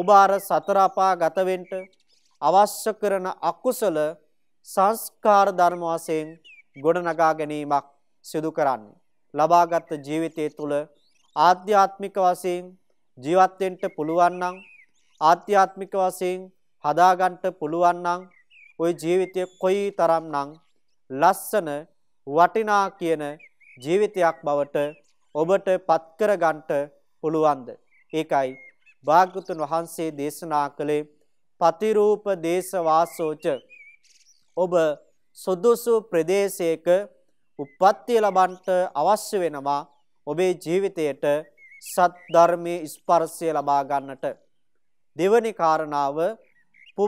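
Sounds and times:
man preaching: 0.0s - 14.6s, 15.2s - 33.6s, 34.6s - 44.4s, 45.2s - 46.4s
man speaking calmly: 0.0s - 33.6s, 34.6s - 44.4s, 45.2s - 46.4s.

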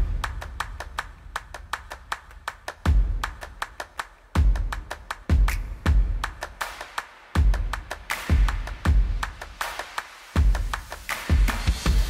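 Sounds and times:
clap-like percussion beat: 0.0s - 12.0s.

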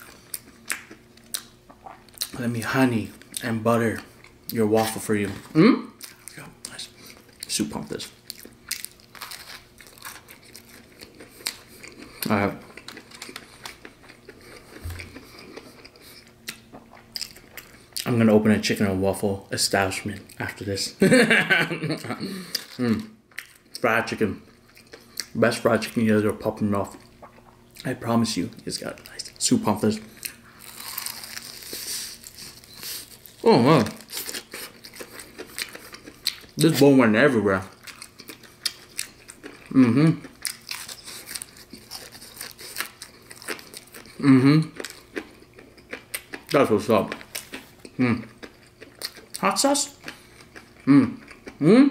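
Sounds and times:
person chewing: 0.0s - 2.4s, 4.0s - 18.1s, 21.9s - 23.8s, 24.4s - 25.4s, 26.8s - 29.4s, 30.1s - 36.6s, 37.6s - 51.9s
biting crunchy fried chicken: 30.2s - 36.6s, 37.6s - 51.7s.

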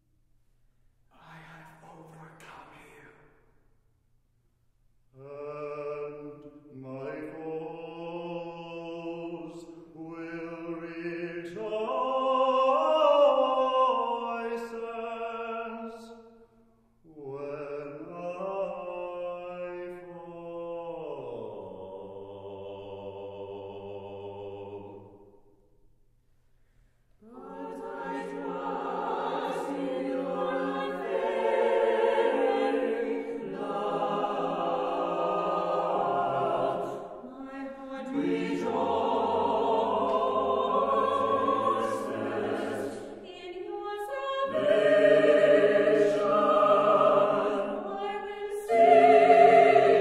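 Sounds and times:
vocal ensemble singing: 5.2s - 16.2s, 17.1s - 25.2s, 27.2s - 50.0s.

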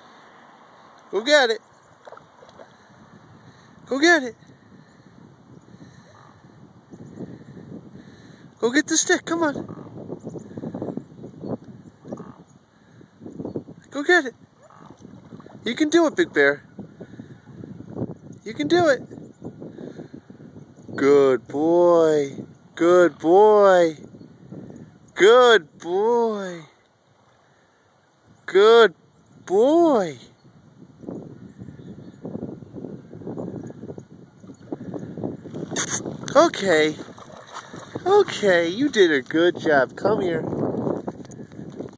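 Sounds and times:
dog splashing in shallow water: 36.9s - 39.4s.

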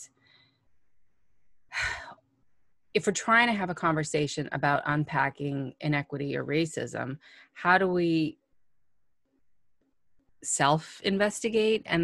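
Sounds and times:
woman breathing: 0.0s - 0.9s, 7.2s - 7.6s
woman speaking: 3.0s - 8.4s, 10.4s - 12.0s.

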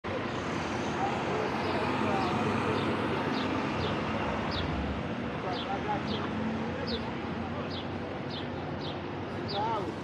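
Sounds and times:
passing road noise: 0.1s - 10.0s
vehicle engines idling: 0.1s - 10.0s.

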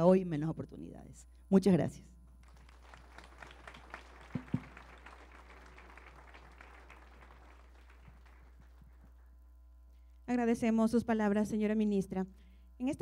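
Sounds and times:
faint audience applause: 2.4s - 9.3s.

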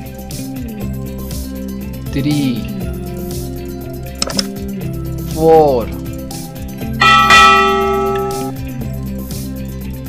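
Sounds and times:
light background music: 0.0s - 10.0s
bell-like chime ringing: 7.0s - 8.5s.

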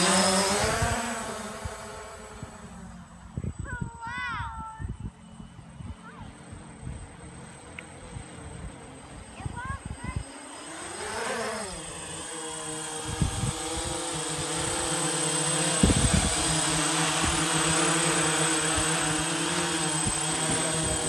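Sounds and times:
quadcopter buzzing: 0.0s - 21.0s.

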